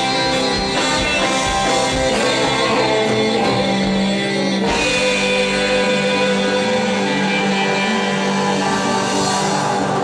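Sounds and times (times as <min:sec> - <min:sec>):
electric guitar: 0:00.0 - 0:10.0
keyboard: 0:00.0 - 0:10.0.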